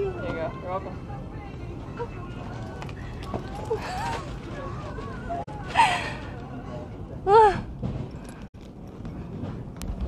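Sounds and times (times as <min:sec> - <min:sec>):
shop background noise: 0:00.0 - 0:10.0.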